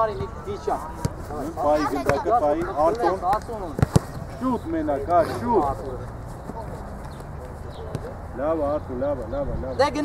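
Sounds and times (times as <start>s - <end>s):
distant voices of players: 0.0s - 9.6s.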